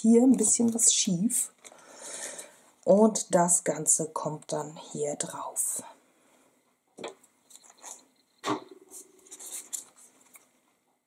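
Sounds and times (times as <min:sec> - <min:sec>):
paper rustling: 0:07.4 - 0:10.6.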